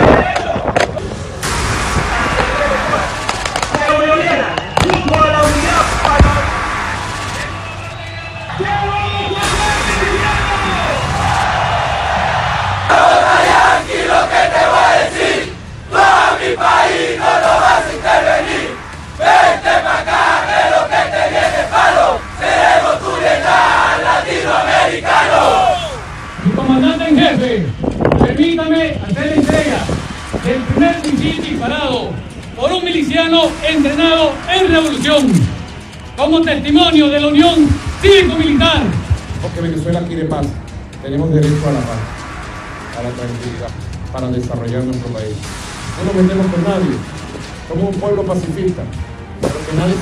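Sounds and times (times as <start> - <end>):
sharp cracks: 0.0 - 7.8
men shouting a chant in unison: 12.8 - 26.0.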